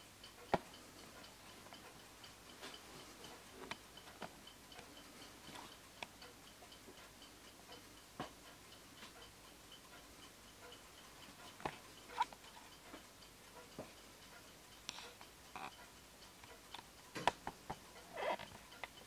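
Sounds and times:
clock ticking faintly: 0.0s - 19.0s.

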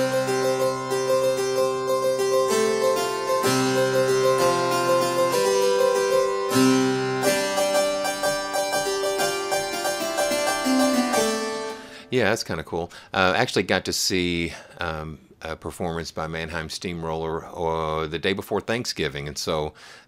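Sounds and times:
harpsichord improvisation: 0.0s - 12.3s.

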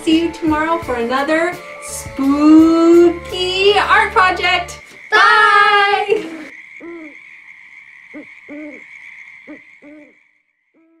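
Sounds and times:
owl hooting: 4.8s - 11.0s.

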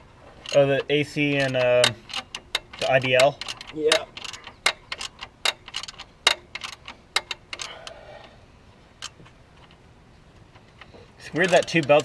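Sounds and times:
hand tools clicking on metal: 0.4s - 8.4s, 10.4s - 12.0s.

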